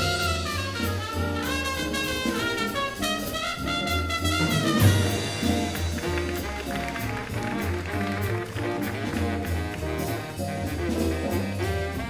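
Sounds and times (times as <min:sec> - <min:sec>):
horn chord: 0:00.0 - 0:12.0
piano chords: 0:00.0 - 0:12.0
upright bass notes: 0:00.0 - 0:12.0.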